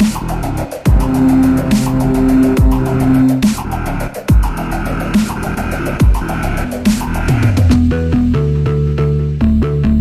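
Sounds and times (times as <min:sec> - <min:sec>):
synth bass notes: 0:00.0 - 0:10.0
deep kick drum: 0:00.9 - 0:03.6, 0:06.0 - 0:06.3.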